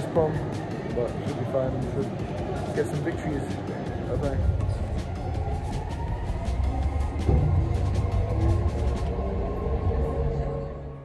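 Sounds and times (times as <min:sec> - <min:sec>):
train motor whine rising: 0:05.8 - 0:11.0.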